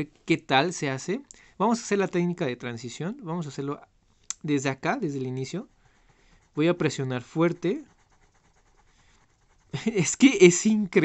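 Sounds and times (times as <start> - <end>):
person speaking: 0.0 - 11.0
coloured pencil scratching on paper: 4.5 - 10.8.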